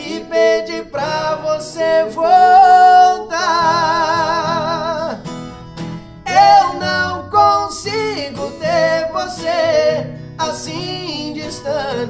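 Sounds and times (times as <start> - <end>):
two men singing in harmony: 0.0 - 5.2, 6.2 - 12.0
strummed acoustic guitar: 0.0 - 12.0.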